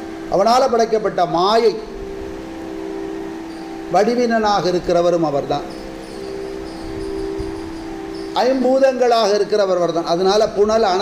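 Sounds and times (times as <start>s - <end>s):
steady two-tone hum: 0.0s - 11.0s.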